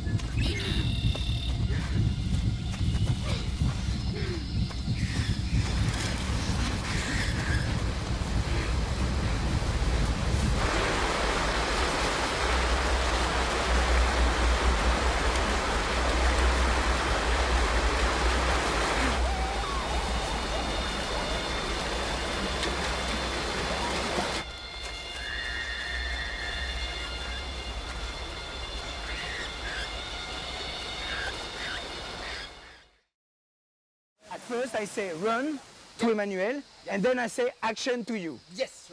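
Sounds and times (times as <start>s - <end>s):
deep steady rumble: 0.0s - 24.4s
haze of noise: 7.6s - 24.4s.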